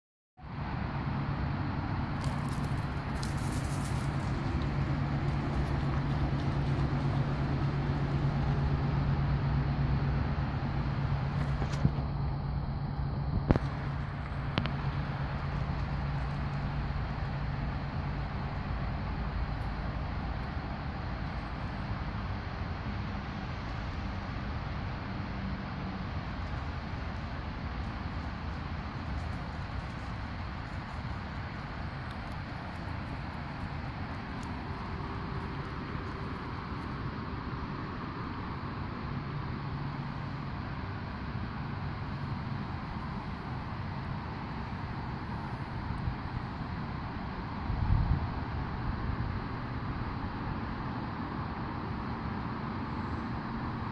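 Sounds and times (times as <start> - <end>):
outdoor background rumble: 0.4 - 53.9
low hum: 0.5 - 53.9.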